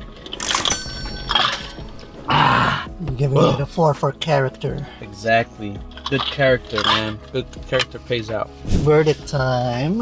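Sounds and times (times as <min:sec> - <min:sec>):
background music: 0:00.0 - 0:10.0
man grunting: 0:02.3 - 0:03.6.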